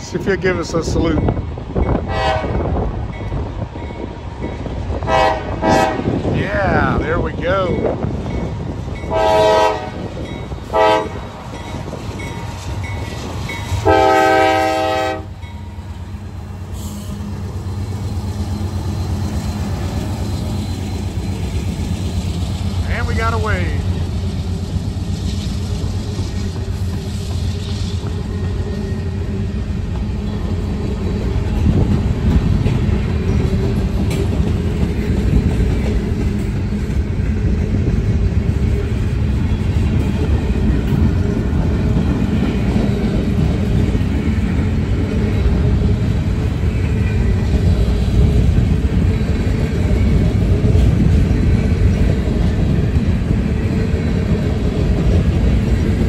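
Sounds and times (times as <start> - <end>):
locomotive engine rumble: 0.0 - 56.0
locomotive horn blasts: 2.1 - 2.7, 5.0 - 6.2, 9.1 - 10.1, 10.7 - 11.2, 13.8 - 15.4
freight cars rolling on rails: 6.2 - 56.0.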